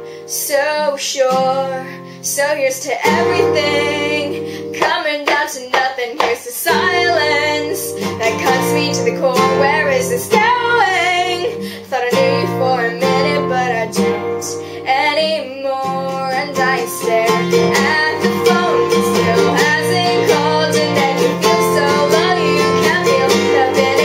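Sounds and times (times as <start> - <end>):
strummed acoustic guitar: 0.0 - 24.0
woman singing: 0.0 - 24.0.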